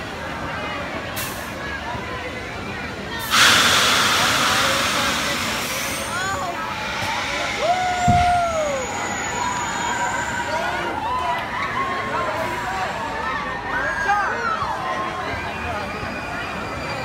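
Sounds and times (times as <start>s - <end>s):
compressed air hissing: 3.2s - 7.6s.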